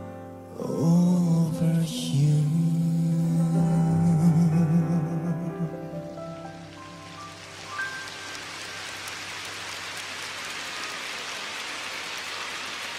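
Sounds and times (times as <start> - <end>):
steady rain: 2.4 - 12.9.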